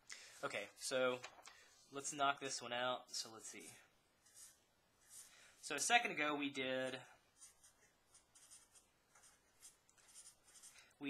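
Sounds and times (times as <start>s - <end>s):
marker scratching on paper: 3.6s - 5.4s, 7.4s - 10.9s.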